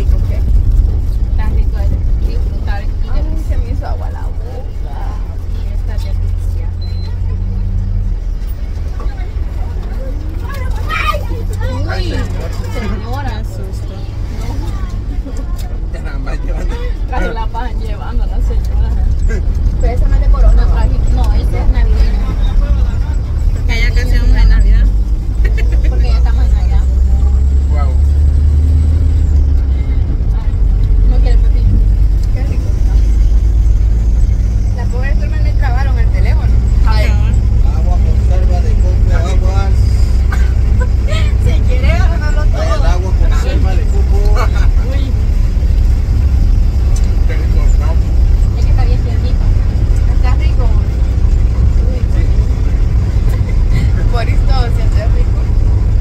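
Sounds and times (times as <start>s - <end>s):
people talking: 0.0s - 28.2s, 29.7s - 56.0s
bus engine and road rumble: 0.0s - 56.0s.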